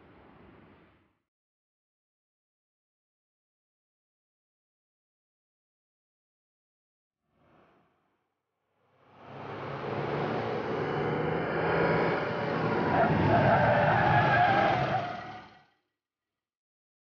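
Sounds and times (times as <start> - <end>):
car engine and tyres: 9.0 - 15.8.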